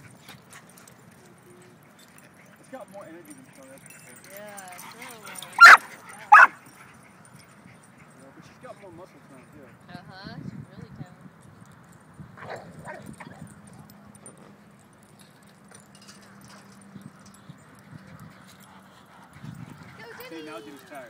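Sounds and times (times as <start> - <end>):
dogs yipping and whining: 3.4 - 8.2.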